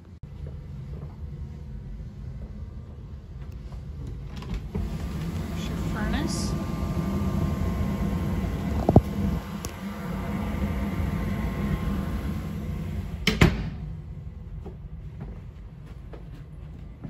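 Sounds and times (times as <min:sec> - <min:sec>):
furnace humming: 0:00.0 - 0:17.0
closet door shutting: 0:12.9 - 0:13.8.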